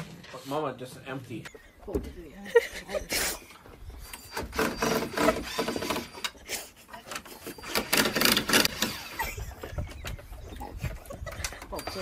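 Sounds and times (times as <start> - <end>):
cordless drill driving screws: 4.2 - 6.4, 7.5 - 9.2.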